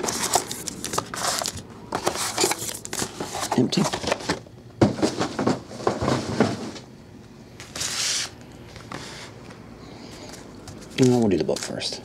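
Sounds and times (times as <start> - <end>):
card packs clicking and rustling: 0.0 - 4.4
packaging rustle: 0.0 - 4.4.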